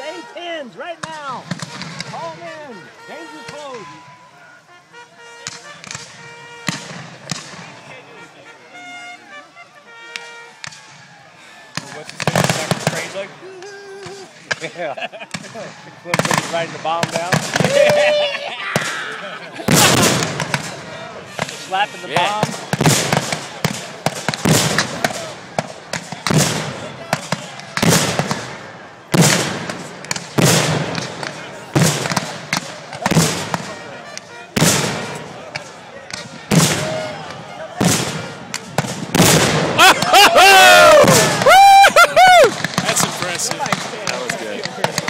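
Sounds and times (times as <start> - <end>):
musket fire: 1.0 - 2.5, 5.3 - 7.9, 10.1 - 11.1, 11.7 - 13.2, 14.0 - 19.0, 19.6 - 45.0.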